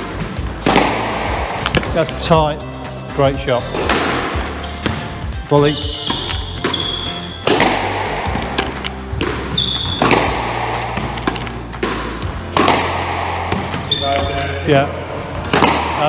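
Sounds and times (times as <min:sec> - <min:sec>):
background music with bass: 0:00.0 - 0:16.0
squash ball knocks: 0:00.4 - 0:02.3, 0:03.8 - 0:05.1, 0:06.0 - 0:14.5, 0:15.5 - 0:16.0
shoes squeaking on wooden floor: 0:03.7 - 0:12.8, 0:13.5 - 0:14.6.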